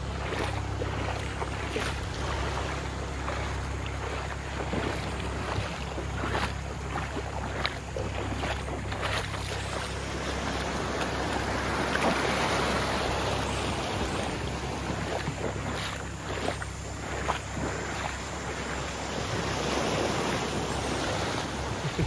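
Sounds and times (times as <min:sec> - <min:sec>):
small waves washing on sand: 0:00.0 - 0:22.0.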